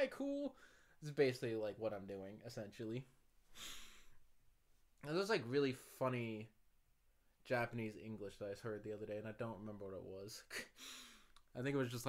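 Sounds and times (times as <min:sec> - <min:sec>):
man breathing: 0:00.6 - 0:01.0, 0:03.5 - 0:04.2, 0:10.7 - 0:11.4.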